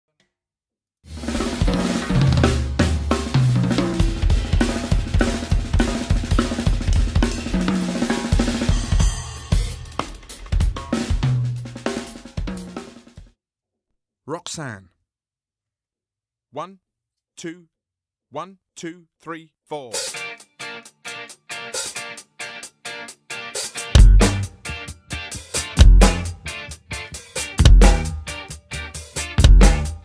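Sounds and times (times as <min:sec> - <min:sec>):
drum kit playing: 0:01.1 - 0:13.3, 0:19.9 - 0:30.0
backing track with bass notes: 0:01.2 - 0:12.8, 0:19.9 - 0:30.0.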